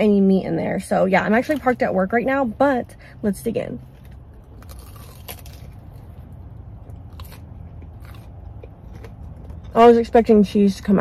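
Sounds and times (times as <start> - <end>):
low steady hum: 0.0 - 11.0
chewing with crisp crunches: 3.8 - 11.0
biting into fried food: 4.0 - 9.8.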